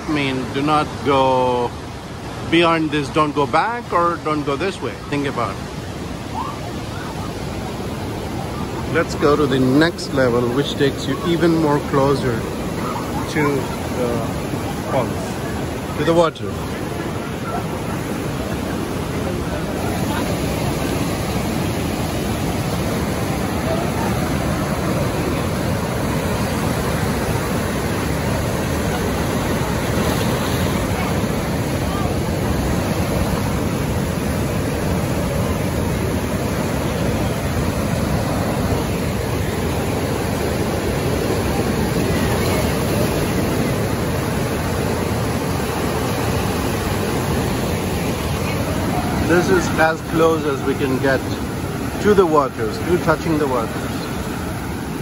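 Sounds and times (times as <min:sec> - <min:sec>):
white-water rapids rushing: 0:00.0 - 0:55.0.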